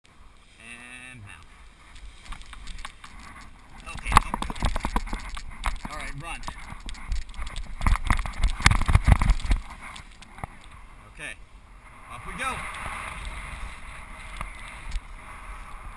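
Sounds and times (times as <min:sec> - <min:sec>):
running footsteps on grass: 0:01.4 - 0:10.7.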